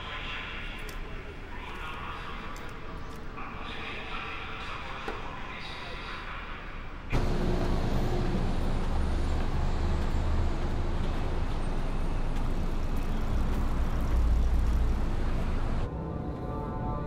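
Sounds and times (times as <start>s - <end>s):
road traffic rumble: 7.1s - 15.9s.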